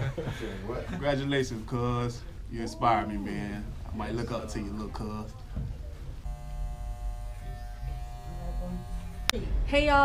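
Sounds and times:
electric hair clippers buzzing: 0:06.2 - 0:09.4.

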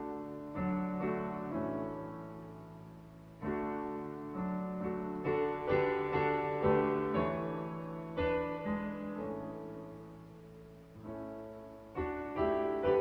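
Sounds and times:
digital piano playing hymn chords: 0:00.0 - 0:13.0.

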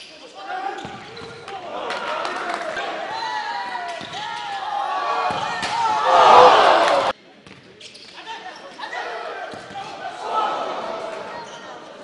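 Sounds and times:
loud shouting: 0:01.6 - 0:07.1, 0:10.0 - 0:11.3
players calling: 0:04.7 - 0:07.2.

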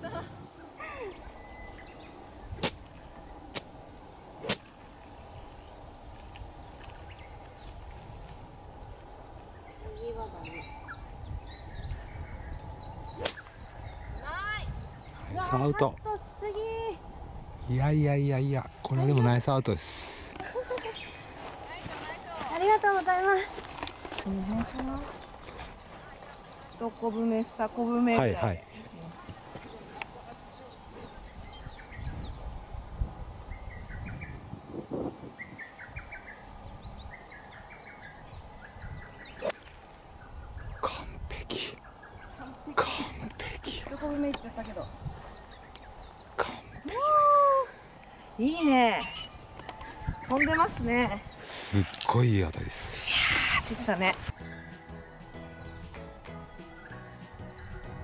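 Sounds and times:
birds chirping: 0:00.0 - 0:58.0
golf club striking ball: 0:39.4 - 0:39.8.

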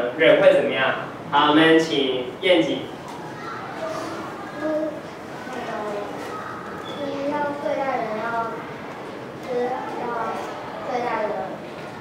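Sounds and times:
children chattering: 0:02.4 - 0:12.0
child speaking softly: 0:03.4 - 0:08.6, 0:09.4 - 0:12.0.

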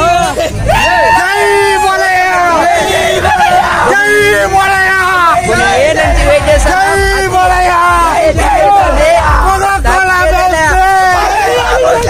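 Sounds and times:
young men shouting and cheering: 0:00.0 - 0:12.0.

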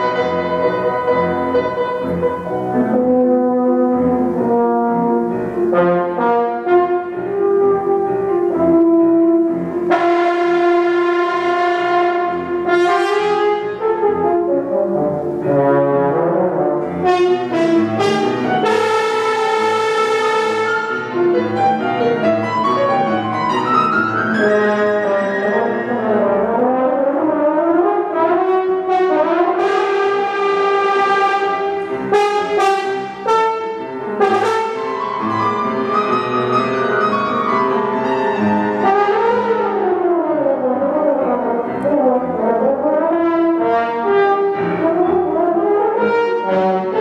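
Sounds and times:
french horn playing: 0:00.0 - 0:47.0
soft piano accompaniment: 0:00.0 - 0:47.0.

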